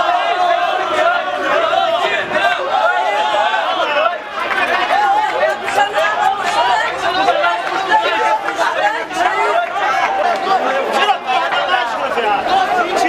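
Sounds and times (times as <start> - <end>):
crowd talking and shouting: 0.0 - 13.0.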